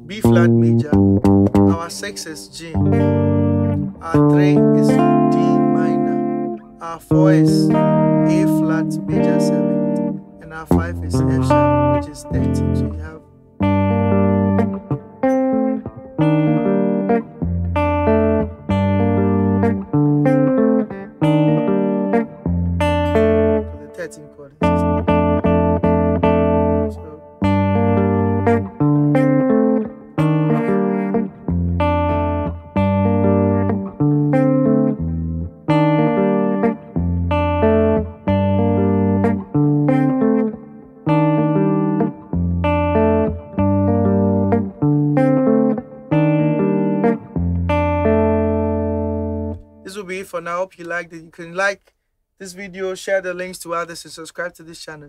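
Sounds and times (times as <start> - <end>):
clean electric guitar picking: 0.0 - 51.0.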